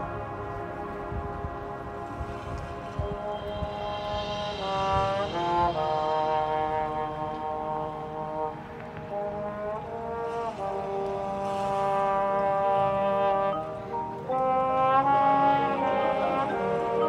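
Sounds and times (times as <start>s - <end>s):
brass section playing sustained chords: 0.0s - 17.0s.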